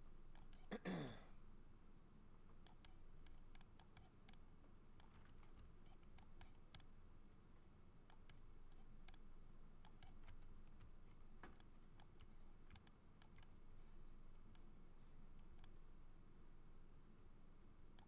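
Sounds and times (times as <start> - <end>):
low steady hum: 0.0 - 18.0
computer mouse and keyboard clicks: 0.3 - 0.7, 2.5 - 7.0, 8.0 - 13.6, 14.3 - 15.8.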